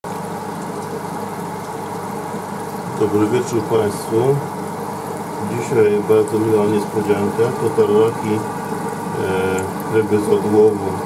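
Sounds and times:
aquarium equipment hum: 0.0 - 11.0
bubbling water: 0.0 - 11.0.

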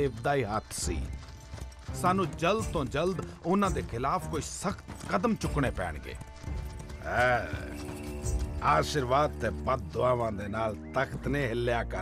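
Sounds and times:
hooves clopping: 0.0 - 12.0
soft background music: 0.0 - 12.0.

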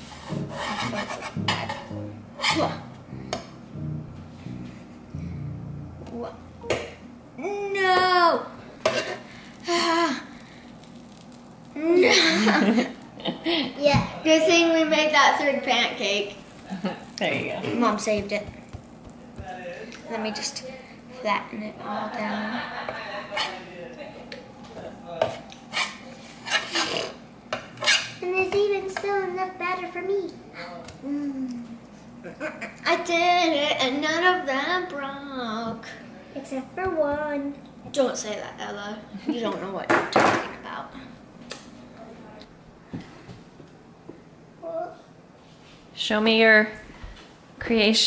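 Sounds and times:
metal spatula scraping griddle: 0.0 - 3.4, 25.2 - 27.2.

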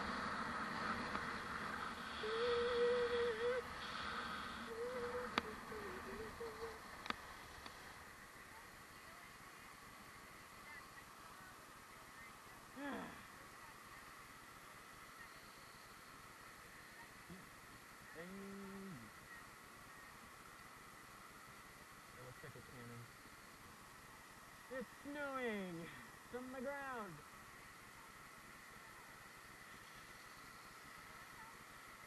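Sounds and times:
skis hissing on snow: 0.0 - 8.5
person humming: 2.1 - 3.7, 4.7 - 6.8, 18.2 - 19.1
person whooping: 2.2 - 3.7, 4.7 - 6.8.

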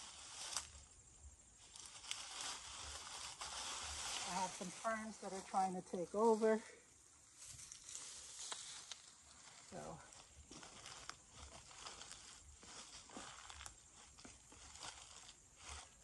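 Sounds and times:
dry leaves rustling and crackling: 0.0 - 6.6, 7.4 - 16.0.

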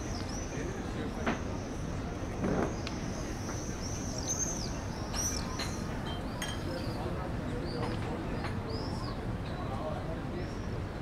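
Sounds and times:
birds chirping: 0.0 - 9.2
town ambience: 0.0 - 11.0.

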